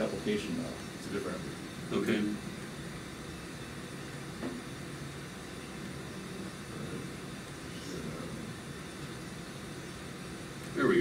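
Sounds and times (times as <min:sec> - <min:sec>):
ventilation noise: 0:00.0 - 0:11.0.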